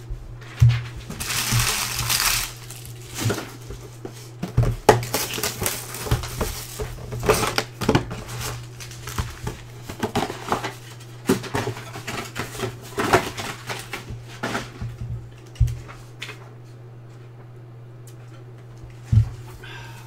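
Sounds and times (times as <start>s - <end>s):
low steady hum: 0.0s - 20.0s
plastic wrap crinkling: 1.0s - 3.6s, 5.0s - 11.0s.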